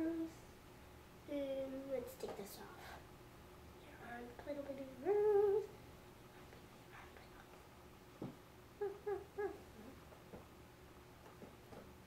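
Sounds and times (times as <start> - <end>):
child humming notes: 0.0 - 0.4, 5.0 - 5.7.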